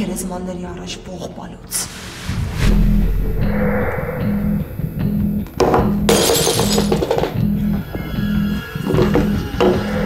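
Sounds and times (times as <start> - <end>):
glass shattering: 6.1 - 7.4.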